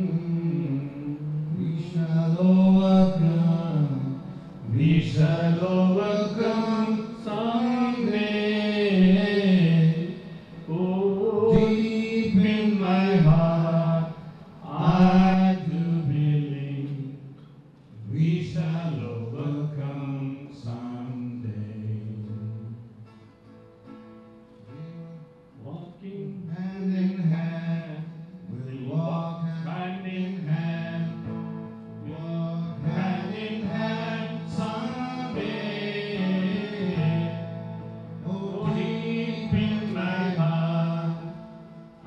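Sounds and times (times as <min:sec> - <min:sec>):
man singing into a microphone: 0:00.0 - 0:23.0, 0:24.6 - 0:42.0
acoustic guitar accompaniment: 0:00.0 - 0:42.0.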